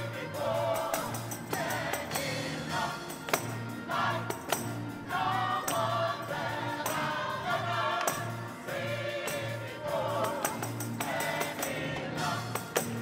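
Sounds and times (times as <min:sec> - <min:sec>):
choir singing: 0:00.0 - 0:13.0
drum kit with cymbals: 0:00.0 - 0:13.0.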